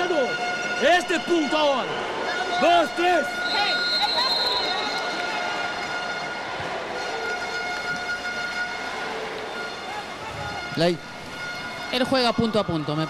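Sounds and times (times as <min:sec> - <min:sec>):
crowd noise in arena: 0:00.0 - 0:13.0.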